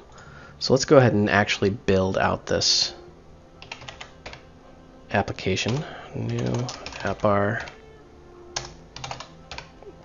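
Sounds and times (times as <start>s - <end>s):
computer keyboard typing: 3.6s - 4.4s, 5.6s - 7.8s, 8.6s - 9.7s.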